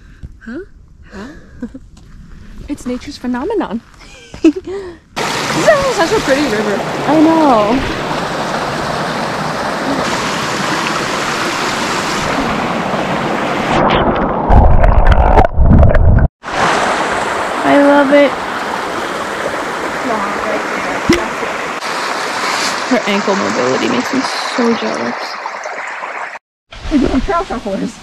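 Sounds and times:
brook babbling over rocks: 5.2s - 13.3s, 16.6s - 26.4s.

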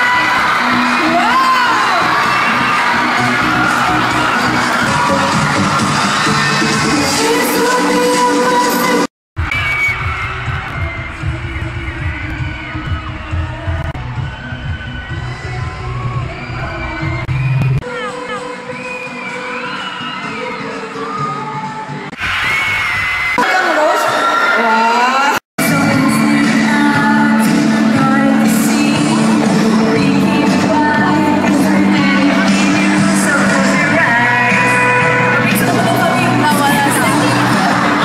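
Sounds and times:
audience cheering and screaming: 0.0s - 38.0s
live pop music: 0.0s - 38.0s.

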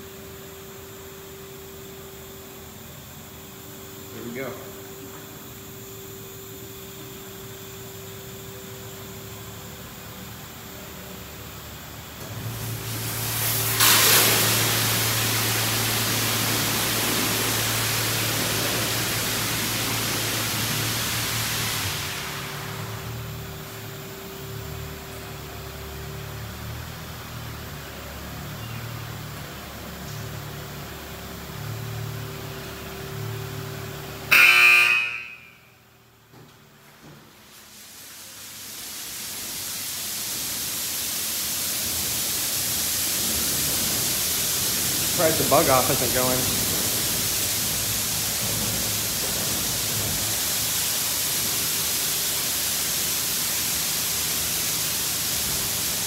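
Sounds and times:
machinery hum: 0.0s - 56.0s
loud pitched blast: 34.3s - 35.6s.

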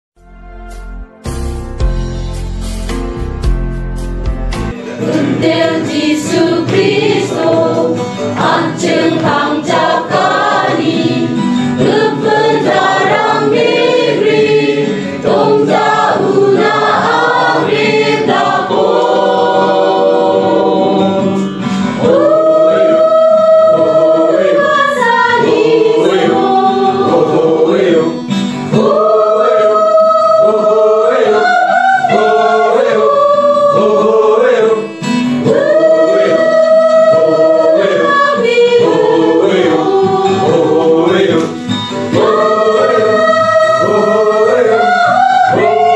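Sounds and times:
musical accompaniment: 0.2s - 45.9s
choir singing gospel song: 4.6s - 45.9s.

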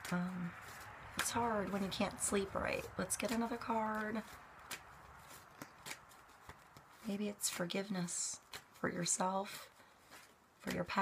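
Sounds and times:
cards clicking in hands: 4.2s - 7.0s.

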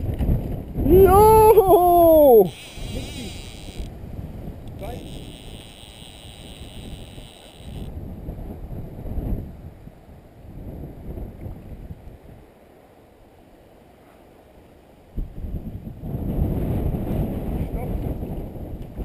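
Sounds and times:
wind buffeting microphone: 0.0s - 12.5s, 15.1s - 19.0s
river flowing: 1.4s - 4.2s, 4.8s - 7.9s
high whirr: 2.1s - 3.9s, 4.8s - 7.9s.

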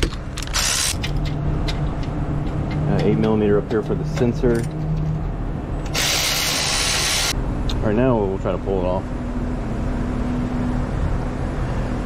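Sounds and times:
cordless ratchet whirring: 0.4s - 1.0s.

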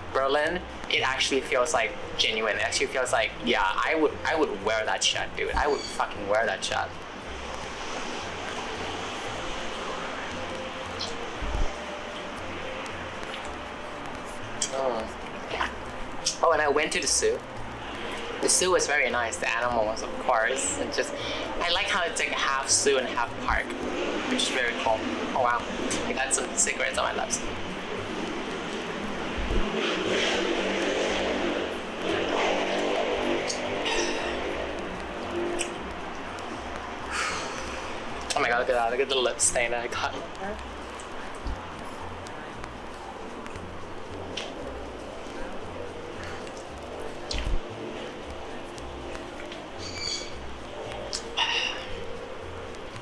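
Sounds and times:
outdoor background noise: 0.0s - 53.0s.

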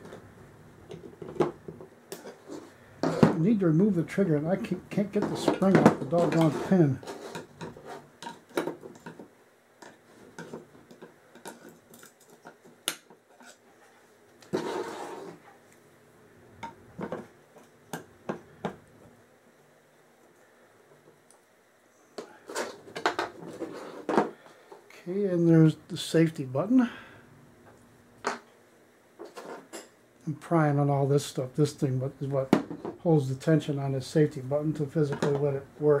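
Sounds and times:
short scrape: 14.5s - 15.4s.

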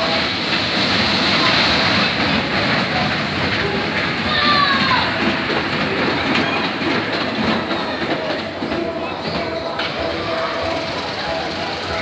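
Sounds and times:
roller coaster wheels rumbling: 0.0s - 12.0s.

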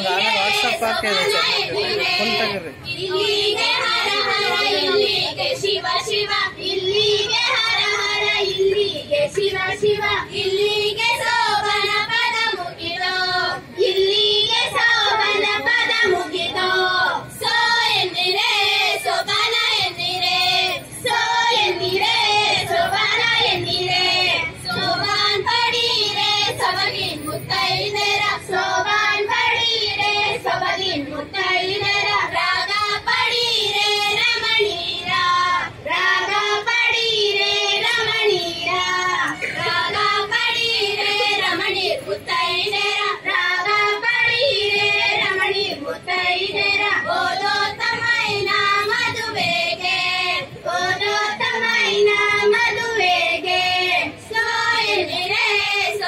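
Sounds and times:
women singing folk song: 0.0s - 56.0s.

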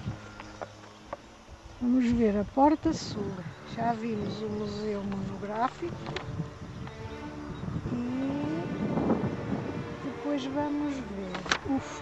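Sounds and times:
flying insect buzzing: 0.0s - 12.0s.

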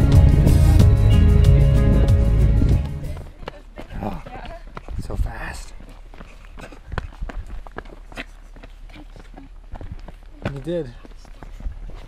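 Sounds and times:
running footsteps on dirt: 2.7s - 12.0s.

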